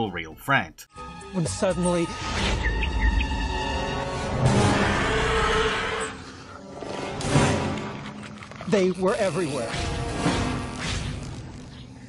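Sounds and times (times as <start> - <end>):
monstrous creature roar: 4.5 - 6.2.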